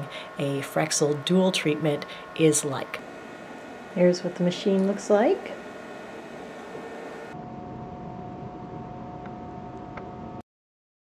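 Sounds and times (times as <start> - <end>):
fan hum and hiss: 0.0 - 10.4
thin high whine: 0.0 - 10.4.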